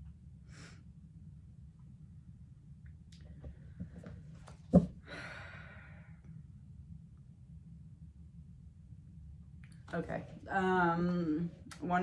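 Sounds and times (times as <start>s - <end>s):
person sighing: 5.1s - 6.0s.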